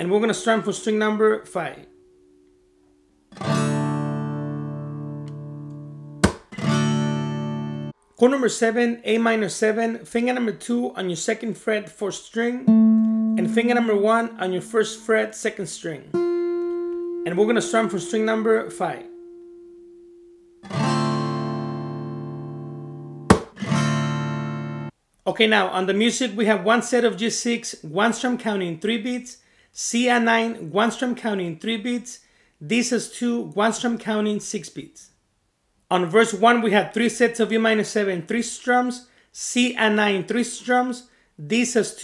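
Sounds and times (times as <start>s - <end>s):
acoustic guitar chord strummed: 0.3s - 8.0s, 12.7s - 15.0s, 16.1s - 24.9s.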